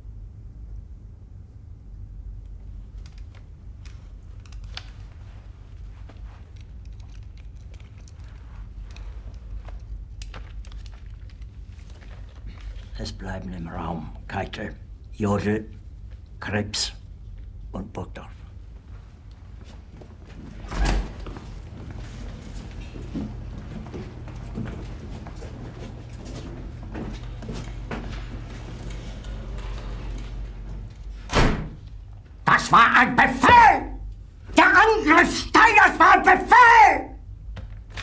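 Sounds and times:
steady low hum: 0:00.0 - 0:38.0
faint small clicks and rustles: 0:02.4 - 0:13.0
footsteps on hard floor: 0:18.8 - 0:29.7.

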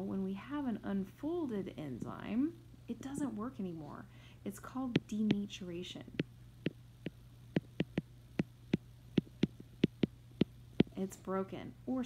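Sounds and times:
electrical mains hum: 0:00.0 - 0:12.0
stylus tapping on drawing tablet: 0:04.9 - 0:05.5, 0:06.2 - 0:11.0.

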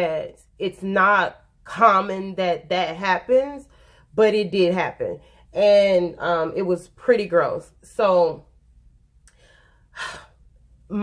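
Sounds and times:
woman breathing: 0:03.7 - 0:04.1, 0:09.3 - 0:10.6.

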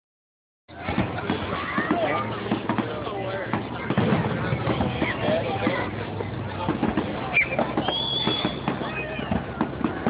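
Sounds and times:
fireworks popping and crackling: 0:03.6 - 0:10.0
firework whistling: 0:07.3 - 0:09.4.

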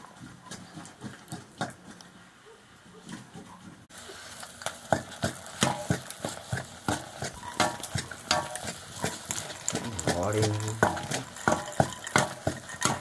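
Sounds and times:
curry sizzling: 0:03.9 - 0:13.0
ladle scraping metal pan: 0:04.9 - 0:13.0.

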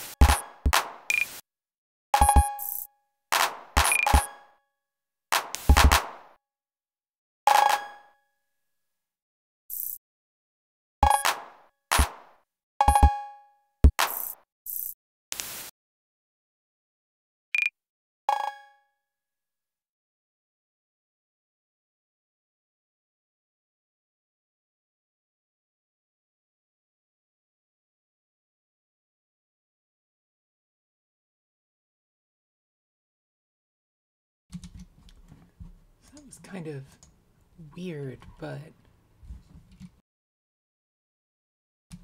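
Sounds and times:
glitchy clicks: 0:00.0 - 0:01.4, 0:02.2 - 0:04.4, 0:09.7 - 0:10.0, 0:13.8 - 0:15.7
electronic clap: 0:05.4 - 0:06.4.

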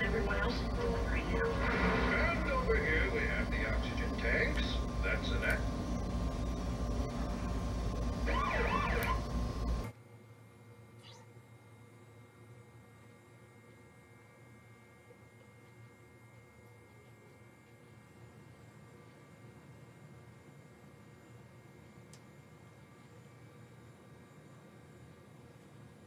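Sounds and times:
cartoon soundtrack from television: 0:00.0 - 0:05.7, 0:07.0 - 0:09.4
faint low hum: 0:00.0 - 0:09.9
wavering siren-like wail: 0:00.0 - 0:09.9.

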